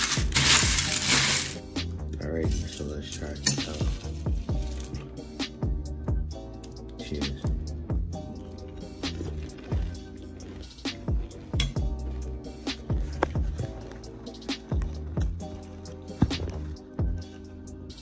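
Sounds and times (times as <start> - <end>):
background music with bass: 0.0 - 18.0.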